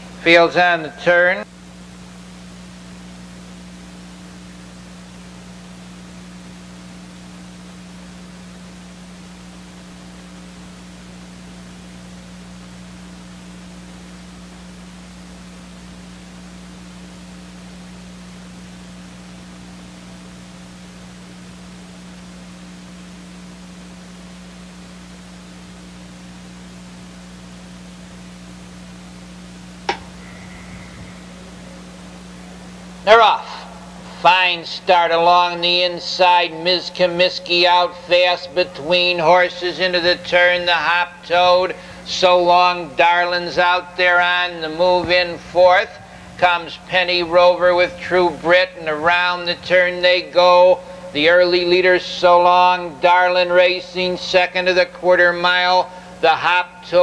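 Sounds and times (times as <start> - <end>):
low electrical hum: 0.0 - 57.0
steady hiss: 0.0 - 57.0.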